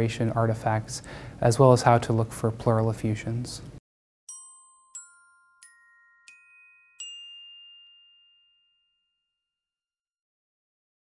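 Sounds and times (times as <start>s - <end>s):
bright chime ringing: 4.3s - 9.2s.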